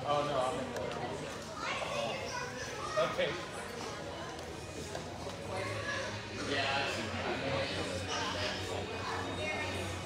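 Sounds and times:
indistinct conversation in a hall: 0:00.0 - 0:10.0.

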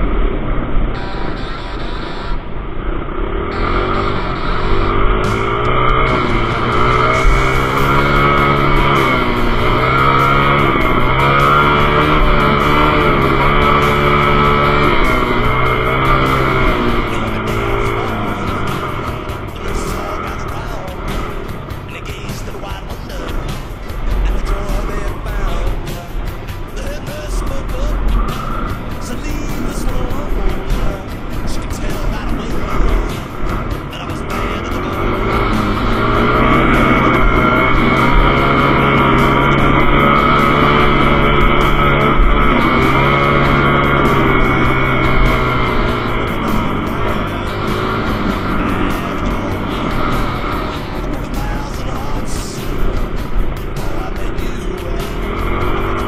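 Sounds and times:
dirt bike engine revving: 0:00.0 - 0:56.0
rushing noise: 0:00.0 - 0:56.0.

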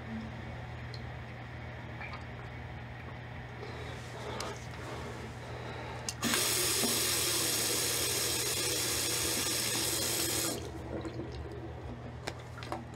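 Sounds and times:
water gushing into washbasin: 0:06.2 - 0:12.6.

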